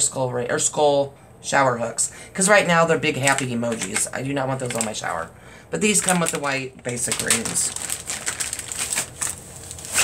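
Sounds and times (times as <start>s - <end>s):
plastic packaging crinkling: 3.1s - 10.0s.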